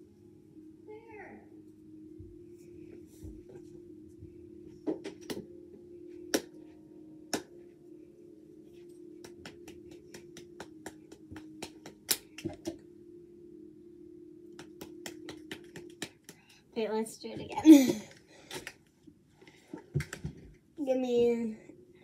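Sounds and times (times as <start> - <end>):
steady low hum: 0.0 - 22.0
hand claps: 5.0 - 5.4, 6.3 - 6.6, 7.3 - 7.6, 9.2 - 12.8, 14.5 - 16.6.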